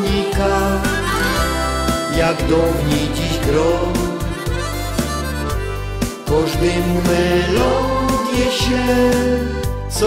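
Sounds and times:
bass line: 0:00.0 - 0:10.0
person singing: 0:00.0 - 0:10.0
harmonica playing held notes: 0:00.6 - 0:08.0.

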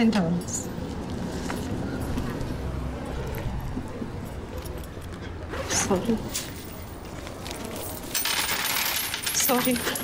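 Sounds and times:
clinks and rustles in handbag: 0:04.2 - 0:10.0.

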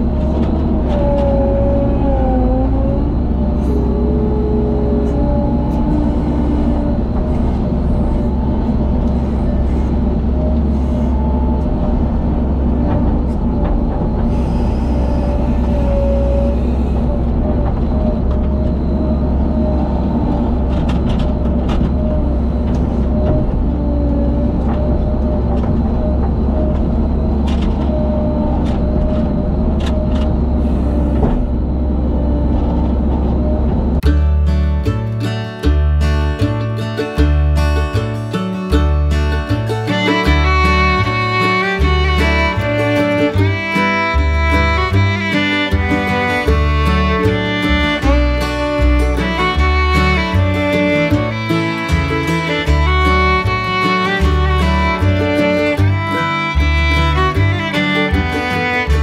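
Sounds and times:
acoustic guitar music: 0:00.0 - 0:59.0
loader engine running: 0:00.0 - 0:59.0
scattered knocks: 0:11.9 - 0:19.0.

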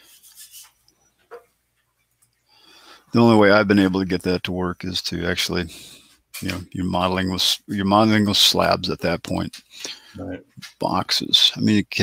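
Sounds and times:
faint soft rubbing: 0:00.0 - 0:01.3.

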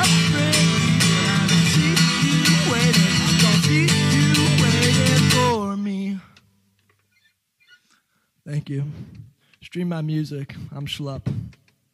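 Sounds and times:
acoustic guitar strumming: 0:00.0 - 0:06.0.

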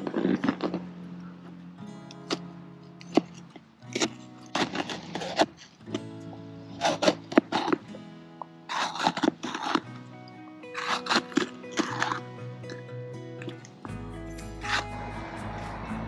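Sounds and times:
background music with sustained notes: 0:00.0 - 0:16.0
knife cutting on plastic board: 0:08.7 - 0:09.8.

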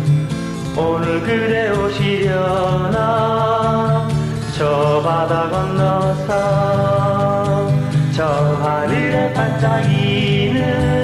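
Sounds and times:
person singing pop melody: 0:00.0 - 0:11.0.

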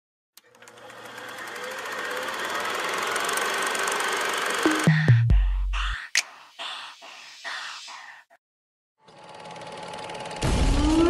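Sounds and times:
fast mechanical clatter: 0:00.4 - 0:04.9, 0:09.1 - 0:10.7.

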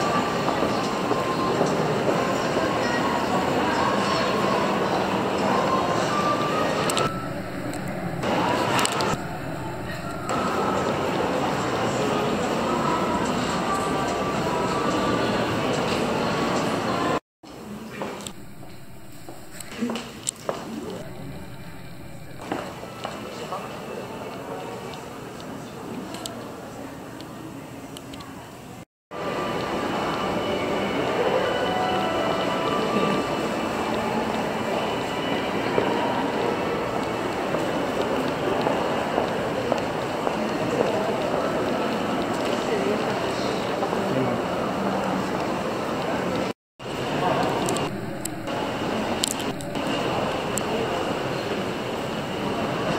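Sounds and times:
hubbub of shoppers: 0:00.0 - 0:52.9
store ambience: 0:00.0 - 0:52.9
held high beep tone: 0:06.9 - 0:11.0, 0:47.7 - 0:50.6.

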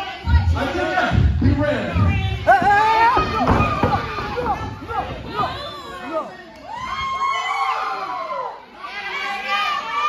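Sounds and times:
audience shouting and cheering: 0:02.3 - 0:10.0.

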